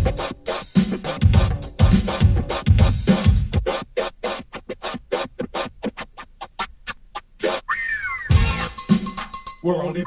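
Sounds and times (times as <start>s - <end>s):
turntable scratching: 0.0s - 10.0s.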